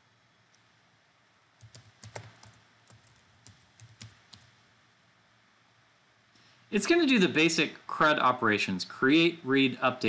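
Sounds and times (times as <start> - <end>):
computer keyboard typing: 1.6 - 4.5.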